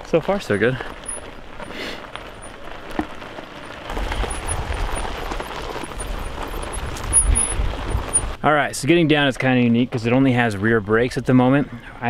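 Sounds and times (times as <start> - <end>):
tyres rolling over gravel: 0.0 - 11.3.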